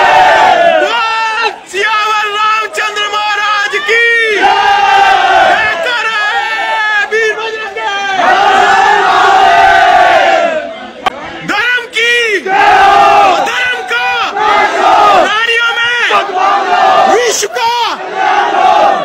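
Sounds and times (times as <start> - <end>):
men shouting angrily: 0.0 - 10.7, 11.4 - 19.0.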